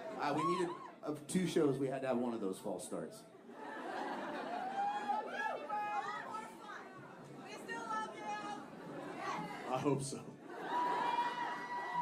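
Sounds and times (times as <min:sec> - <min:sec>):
audience chatter: 0:03.2 - 0:12.0.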